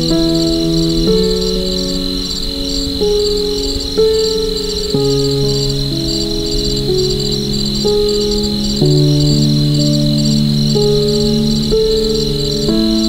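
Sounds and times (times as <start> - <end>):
crickets chirping: 0.0 - 13.0
soft piano chords: 0.0 - 13.0.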